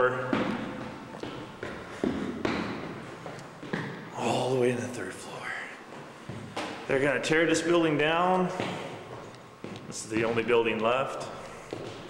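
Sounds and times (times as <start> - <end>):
footsteps echoing on concrete stairs: 0.0 - 4.4, 5.8 - 12.0.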